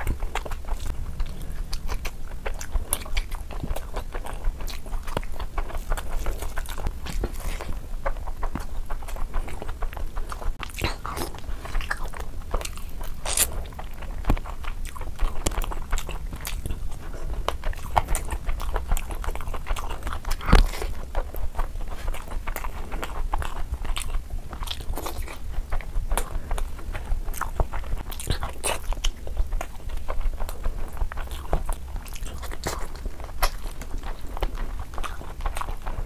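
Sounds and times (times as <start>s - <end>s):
chewing and wet mouth sounds: 0.0s - 36.0s.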